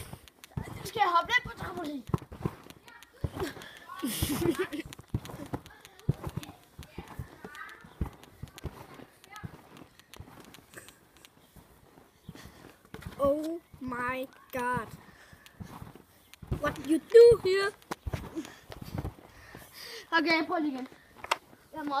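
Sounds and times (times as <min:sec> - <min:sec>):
feet thumping on trampoline: 0:00.0 - 0:20.8.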